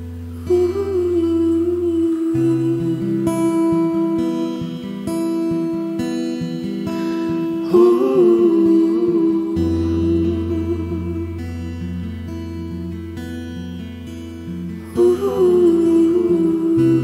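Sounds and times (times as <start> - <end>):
acoustic guitar picked softly: 0.0 - 17.0
wordless humming vocal: 0.4 - 4.4, 7.3 - 12.0, 14.8 - 17.0.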